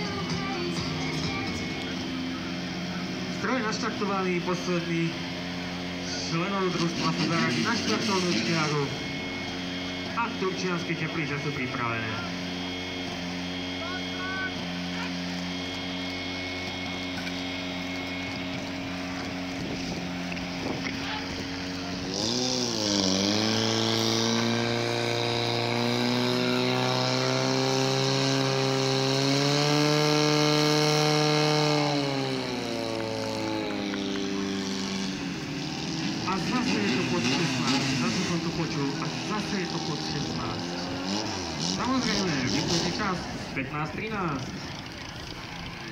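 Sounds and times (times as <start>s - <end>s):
pump engine idling and revving: 0.0s - 45.9s.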